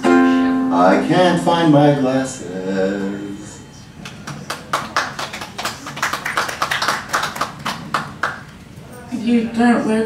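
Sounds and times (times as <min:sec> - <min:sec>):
audience applauding: 0:04.0 - 0:08.6.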